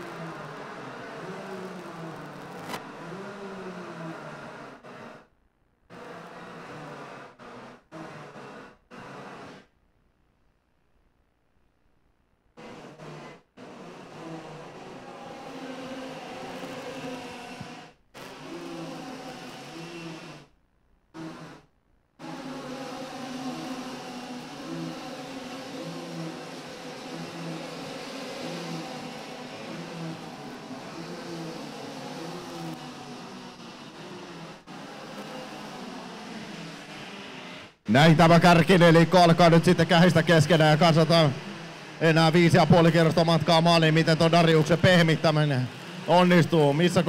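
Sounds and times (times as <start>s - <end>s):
kart engines racing: 0.0s - 5.3s, 5.9s - 9.7s, 12.6s - 20.5s, 22.2s - 47.0s.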